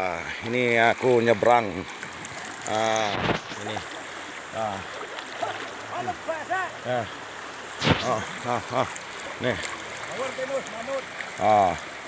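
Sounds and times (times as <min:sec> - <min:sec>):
floodwater rushing: 0:00.0 - 0:12.0.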